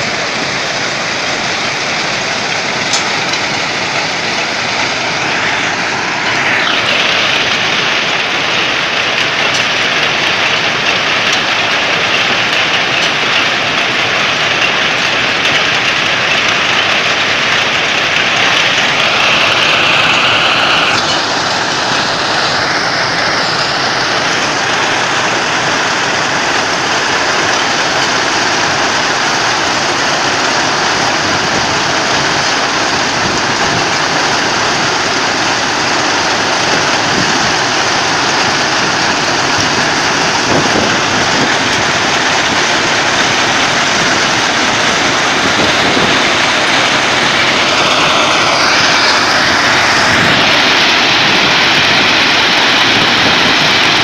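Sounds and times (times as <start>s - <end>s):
diesel engines: 0.0s - 54.0s
excavating chain and conveyors: 0.0s - 54.0s.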